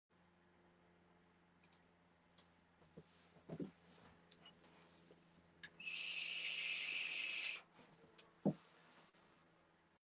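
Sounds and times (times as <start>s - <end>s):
steady high hiss: 4.8s - 7.7s.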